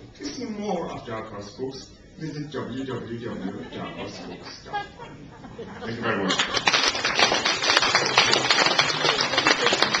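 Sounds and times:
audience applauding: 6.3s - 10.0s.

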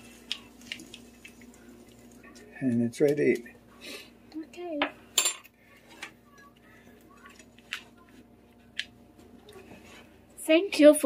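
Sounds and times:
cutlery clinking against dishes: 5.2s - 6.2s.

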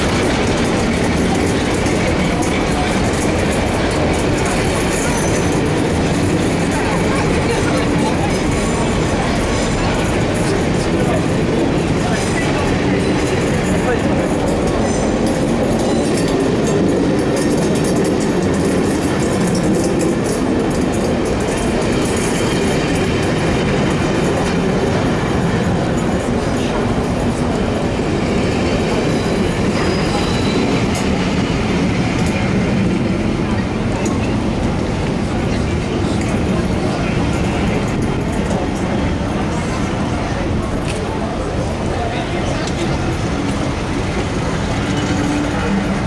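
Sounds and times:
train wheels rumbling on rails: 0.0s - 46.0s.

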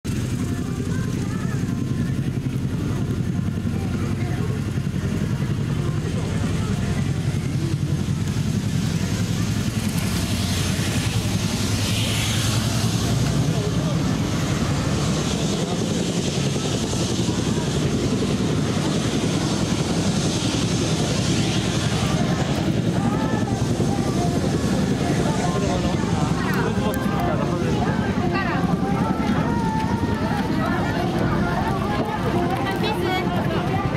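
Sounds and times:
crowd chatter: 0.0s - 33.9s
low engine drone: 0.1s - 33.9s
high rushing hiss: 7.4s - 26.5s.

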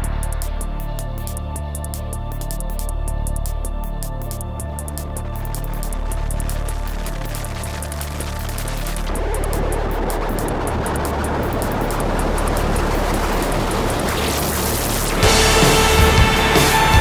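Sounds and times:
dense wash of noise: 0.0s - 17.0s
fast high ticking beat: 0.0s - 17.0s
low sustained bass notes: 0.0s - 17.0s.

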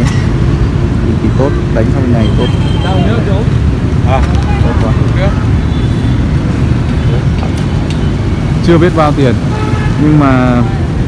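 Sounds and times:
motorbikes passing: 0.0s - 11.0s
street traffic rumble: 0.0s - 11.0s
people talking: 1.1s - 5.4s, 10.0s - 10.8s.

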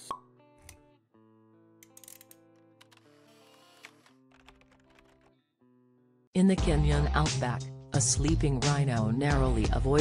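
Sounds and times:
soft background music: 6.4s - 10.0s.

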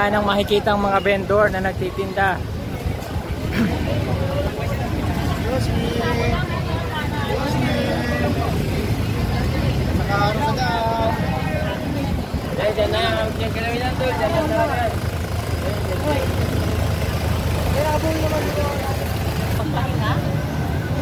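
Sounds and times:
low rumble of vehicle engines: 0.0s - 21.0s
people talking: 0.0s - 21.0s.

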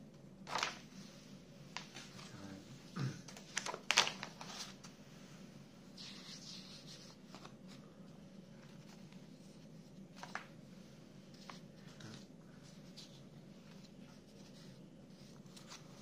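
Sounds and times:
magazine pages rustling: 0.5s - 1.0s, 1.7s - 2.4s, 3.3s - 4.9s, 6.0s - 7.9s, 8.5s - 10.6s, 11.3s - 16.0s.

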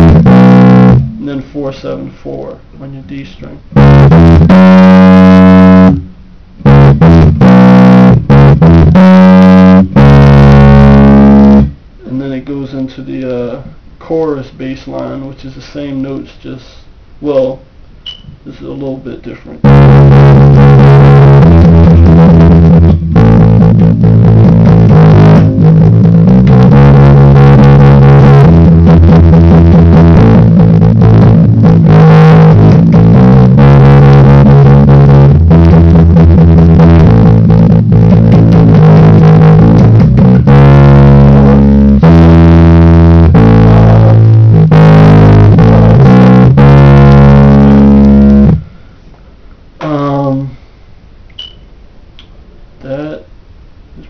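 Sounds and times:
electric bass playing punk bassline: 0.0s - 13.6s, 18.1s - 49.0s.

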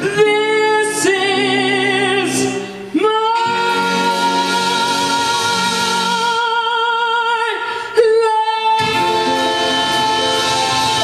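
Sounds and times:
backing band playing: 0.0s - 6.6s, 8.6s - 11.0s
woman singing with vibrato: 0.0s - 11.0s.

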